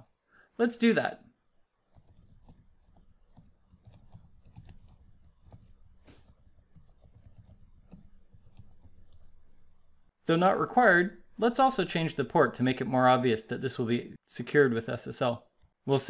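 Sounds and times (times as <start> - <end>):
rapid typing on keyboard: 1.9 - 9.4.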